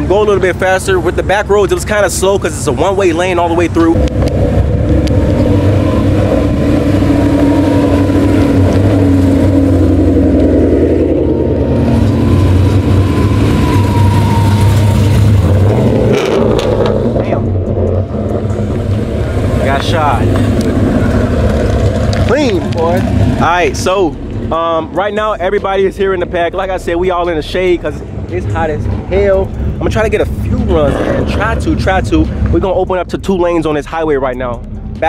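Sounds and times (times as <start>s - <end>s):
car engines rumbling at low revs: 0.0s - 35.0s
steady tone: 0.0s - 35.0s.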